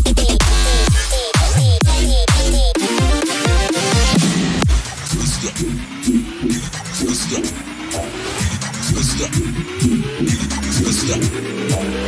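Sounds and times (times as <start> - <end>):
drum beat: 0.0 - 12.0
synth bass sliding in pitch: 2.4 - 12.0
rising synth line: 3.2 - 12.0.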